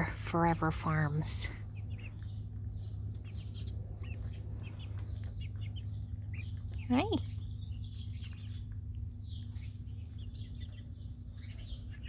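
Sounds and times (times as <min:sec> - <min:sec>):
chicks peeping and chirping: 0:00.0 - 0:12.0
steady low hum: 0:00.0 - 0:12.0.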